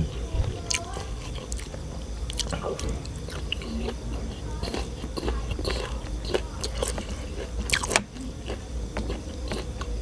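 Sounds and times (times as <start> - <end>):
person chewing food: 0.0 - 10.0.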